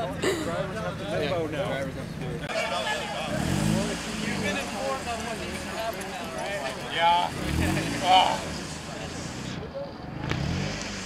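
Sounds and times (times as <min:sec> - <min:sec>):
people talking: 0:00.0 - 0:11.0
sports car engine revving: 0:03.2 - 0:11.0.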